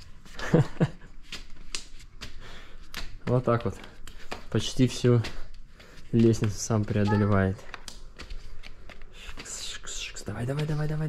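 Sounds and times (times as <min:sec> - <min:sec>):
toddler tapping on stone stairs: 0:06.2 - 0:09.6.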